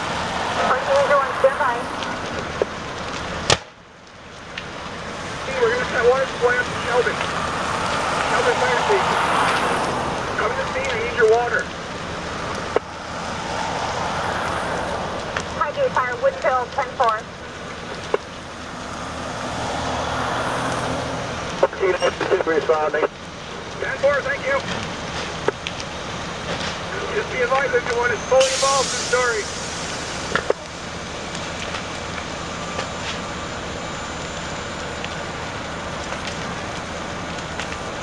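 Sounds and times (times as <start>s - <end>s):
vehicle driving past: 0.0s - 2.5s, 6.9s - 15.9s, 18.4s - 21.6s.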